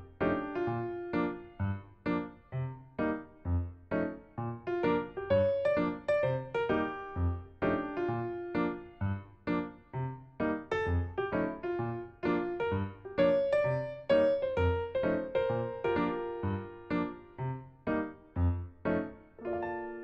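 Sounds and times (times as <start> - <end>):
light keyboard tune: 0.0 - 20.0.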